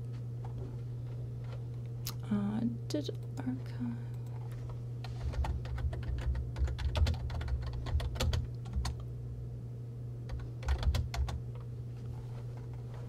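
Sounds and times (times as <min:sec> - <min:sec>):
typing on computer keyboard: 0:05.3 - 0:09.0, 0:10.3 - 0:11.4.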